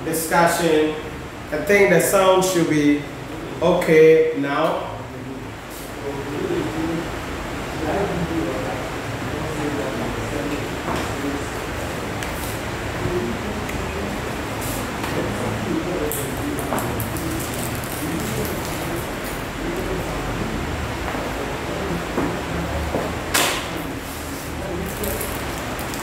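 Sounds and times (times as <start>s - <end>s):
microphone hiss and hum: 0.0s - 26.0s.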